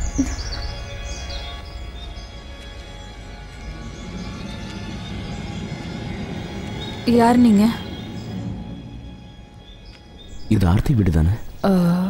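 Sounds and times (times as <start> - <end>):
film score with held tones: 0.0 - 12.0.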